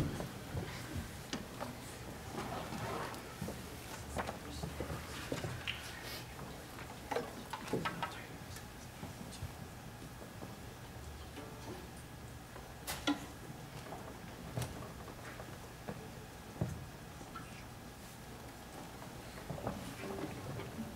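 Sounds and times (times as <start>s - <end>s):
low steady hum: 0.0s - 20.9s.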